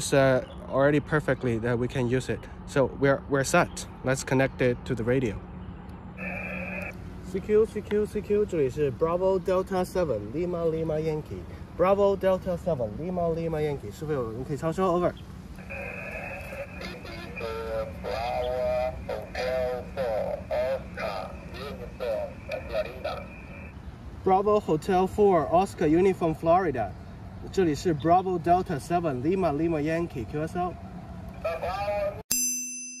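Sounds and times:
garbled radio voice: 6.2s - 7.7s, 15.6s - 23.7s, 31.4s - 32.2s
radio band noise: 6.2s - 7.8s, 15.5s - 23.9s, 31.4s - 32.2s
person speaking: 6.2s - 30.8s.

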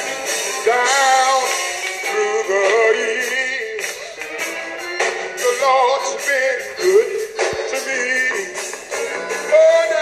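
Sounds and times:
live band with percussion beat: 0.0s - 10.0s
person singing gospel: 0.1s - 4.1s, 5.4s - 10.0s.

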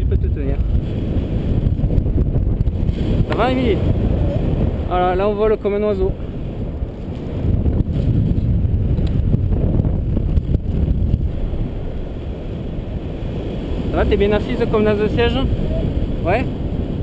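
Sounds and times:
wind rushing over microphone: 0.0s - 17.0s.

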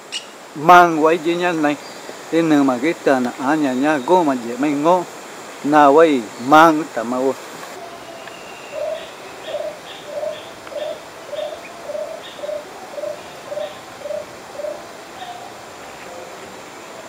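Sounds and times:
forest ambience hiss: 0.0s - 17.0s
bird cooing: 7.8s - 17.0s.

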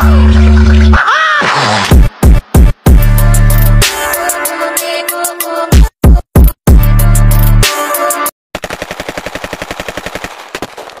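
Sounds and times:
automatic gunfire: 8.6s - 11.0s.

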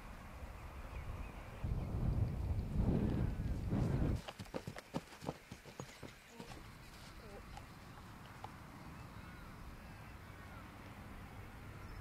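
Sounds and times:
wind rumble on microphone: 0.4s - 4.4s.

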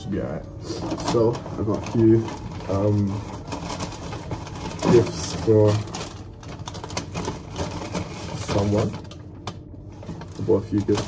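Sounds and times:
paper bag rustling: 0.2s - 11.0s.

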